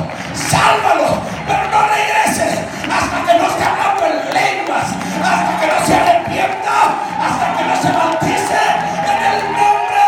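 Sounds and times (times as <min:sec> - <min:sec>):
steady held music: 0:00.0 - 0:10.0
congregation shouting: 0:03.1 - 0:10.0.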